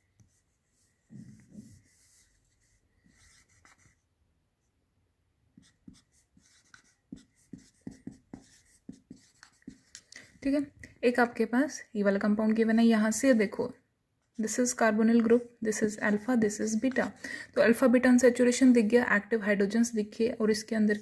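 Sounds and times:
marker writing on whiteboard: 0.1s - 4.0s, 5.5s - 10.3s.

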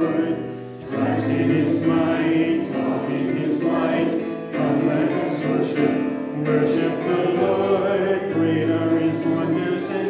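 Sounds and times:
congregation singing a hymn: 0.0s - 10.0s.

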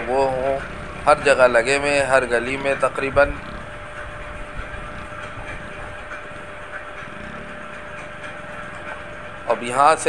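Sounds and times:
faint steady whine: 0.0s - 10.0s
vehicle engine and road noise: 0.0s - 10.0s.

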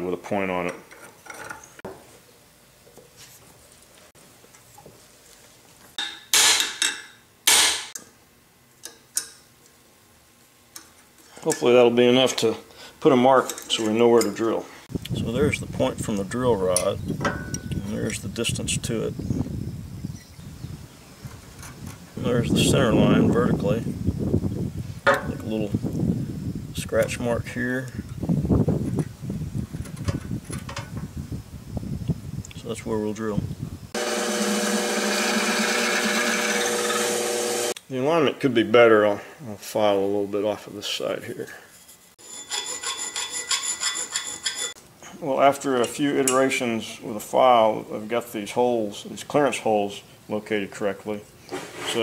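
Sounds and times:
metal tools handling and scraping: 0.7s - 1.8s, 13.4s - 14.5s, 41.7s - 44.8s.

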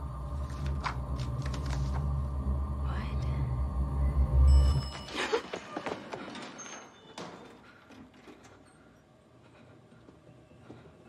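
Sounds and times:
deep rumbling drone: 0.0s - 5.1s.

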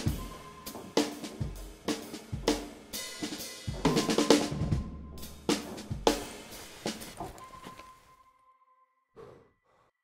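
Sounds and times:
drum music: 0.0s - 7.1s.

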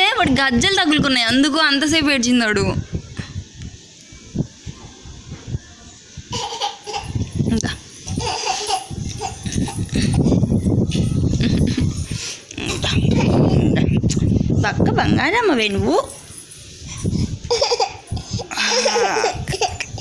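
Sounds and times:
toddler whimpering cries: 17.5s - 19.8s.

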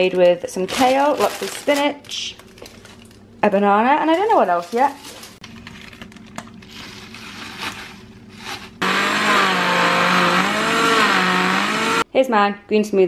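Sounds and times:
jug blender running: 8.8s - 12.0s.

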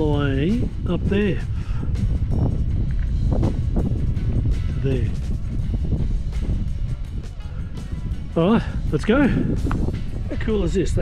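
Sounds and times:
soft background music: 0.0s - 11.0s
wind buffeting microphone: 0.0s - 11.0s.

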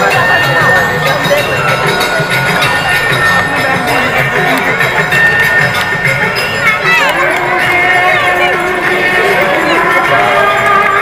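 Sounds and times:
metal bells ringing: 0.0s - 11.0s
devotional singing over loudspeakers: 7.0s - 11.0s.

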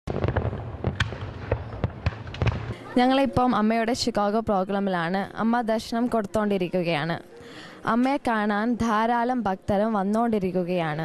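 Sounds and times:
fireworks bangs and crackles: 0.1s - 2.8s.

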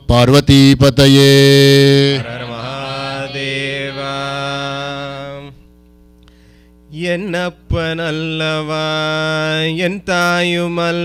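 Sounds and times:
devotional chant on one note: 0.1s - 5.8s, 6.9s - 11.0s.

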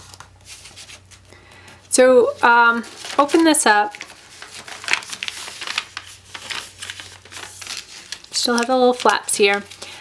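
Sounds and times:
paper crinkling and rustling: 0.0s - 1.6s, 2.2s - 10.0s.

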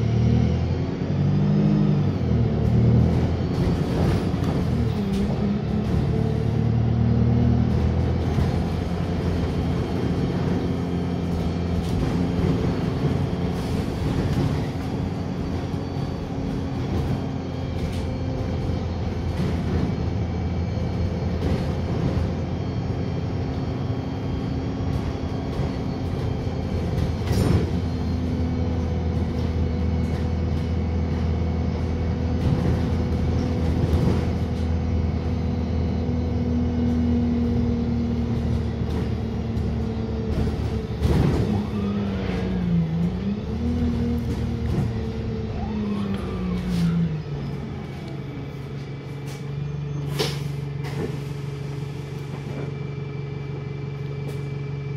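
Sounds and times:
bus engine drone with whine: 0.0s - 54.9s
bus body knocks and rattles: 2.4s - 45.8s, 46.4s - 54.9s.

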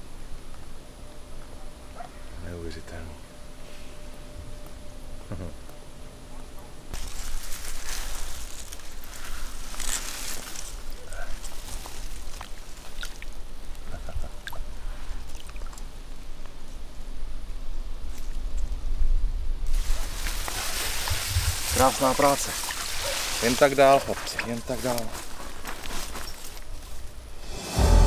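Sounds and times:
water dripping: 12.3s - 15.9s.

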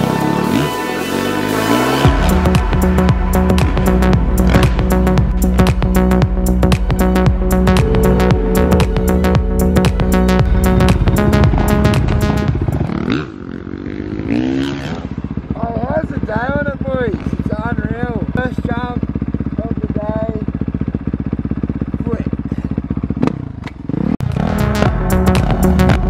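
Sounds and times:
electronic music: 0.0s - 13.3s, 24.2s - 26.0s
dirt bike engine idling: 0.0s - 26.0s
man talking: 15.6s - 19.0s.

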